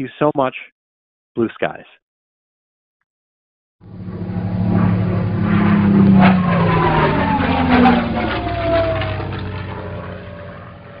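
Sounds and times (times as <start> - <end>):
propeller airplane flying by: 3.8 - 11.0.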